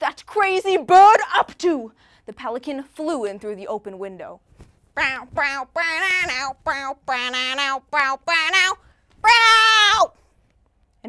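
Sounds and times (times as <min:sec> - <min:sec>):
person making high cries: 0:05.0 - 0:10.1.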